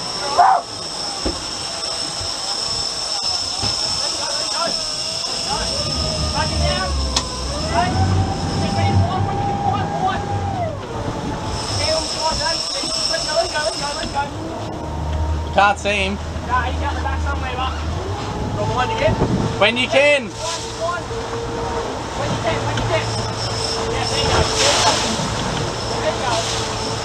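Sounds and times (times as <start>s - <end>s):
steady high whine: 0.0s - 19.1s
outboard engines: 0.0s - 27.0s
water wash: 0.0s - 27.0s.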